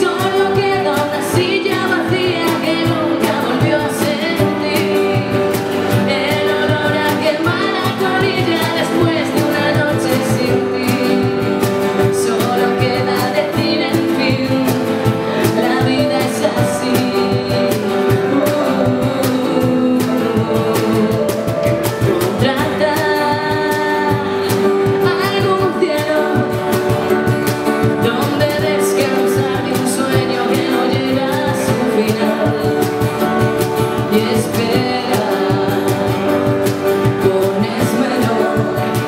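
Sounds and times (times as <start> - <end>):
cajon beat: 0.0 - 39.0
strummed acoustic guitars: 0.0 - 39.0
woman singing: 0.0 - 39.0.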